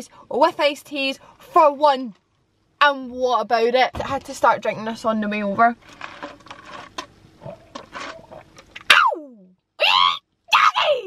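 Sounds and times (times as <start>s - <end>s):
gulping and swallowing: 7.3s - 8.9s.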